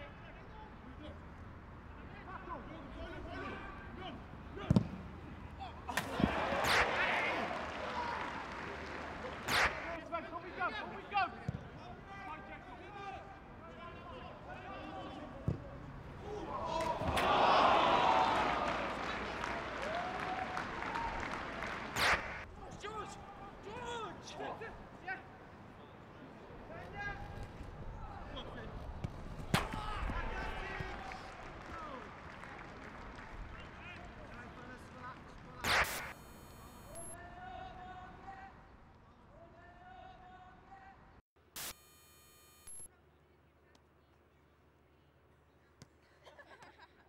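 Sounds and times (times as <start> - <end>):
ball being kicked: 4.7 - 5.0
players shouting: 5.5 - 15.4, 16.2 - 24.8, 29.5 - 32.4
crowd cheering: 5.7 - 11.1, 16.2 - 24.0, 28.2 - 36.2
sharp ball strike: 9.5 - 9.9, 22.0 - 22.4, 29.5 - 29.8, 35.6 - 36.2
loud sharp burst: 35.6 - 36.2.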